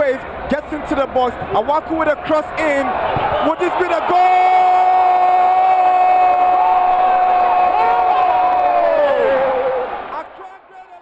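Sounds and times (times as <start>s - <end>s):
background shouts: 3.4s - 10.9s.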